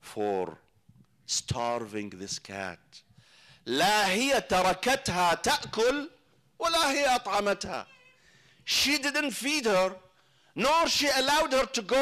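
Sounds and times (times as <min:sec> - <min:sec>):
man speaking: 0:01.3 - 0:03.0, 0:03.6 - 0:07.9, 0:08.7 - 0:12.0.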